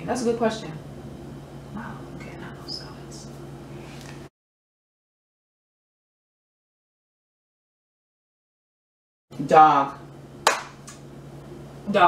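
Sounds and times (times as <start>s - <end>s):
hand clap: 10.4s - 11.0s.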